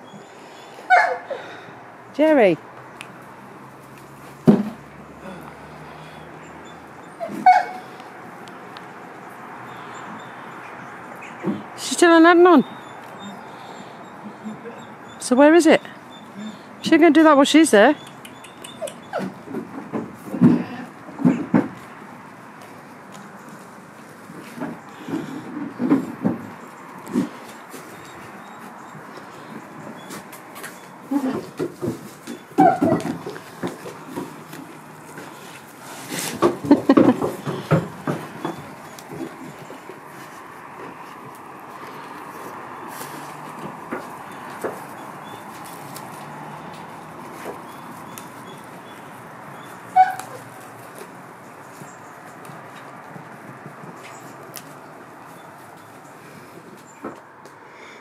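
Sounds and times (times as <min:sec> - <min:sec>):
goat chewing leaves: 0:21.8 - 0:57.0
branch rustling: 0:26.6 - 0:53.0.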